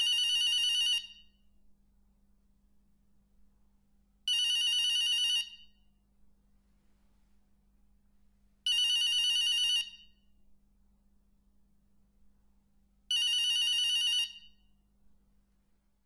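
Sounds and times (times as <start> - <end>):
telephone ringing: 0.0 - 1.2, 4.3 - 5.6, 8.7 - 10.0, 13.1 - 14.5
faint steady hum: 0.0 - 16.0.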